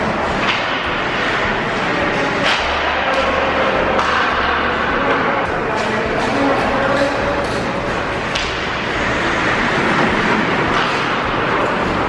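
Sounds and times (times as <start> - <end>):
skates carving ice: 0.0 - 12.0.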